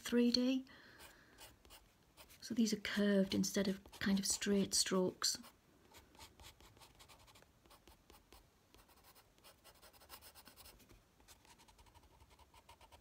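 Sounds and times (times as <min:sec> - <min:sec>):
coloured pencil scratching on paper: 0:01.0 - 0:04.8, 0:05.4 - 0:13.0.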